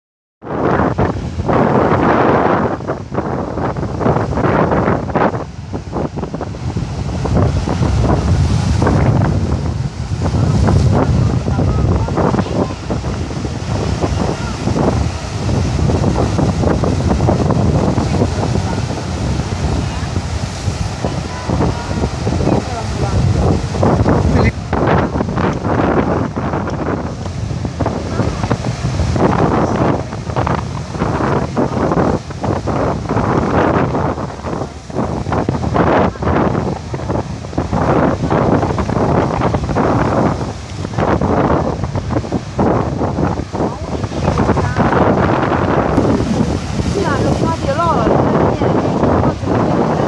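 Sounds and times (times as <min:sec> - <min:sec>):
wind buffeting microphone: 0:00.4 - 0:50.0
surf breaking on shore: 0:00.5 - 0:50.0
indistinct voices: 0:46.0 - 0:50.0.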